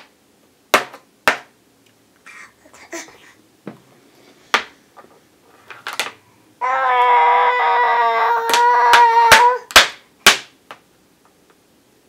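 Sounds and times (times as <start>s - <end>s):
baby holding a long aah: 6.6s - 9.7s.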